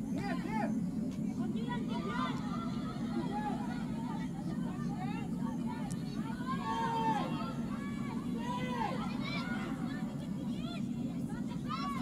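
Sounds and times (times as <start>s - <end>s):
players shouting: 6.2s - 9.8s.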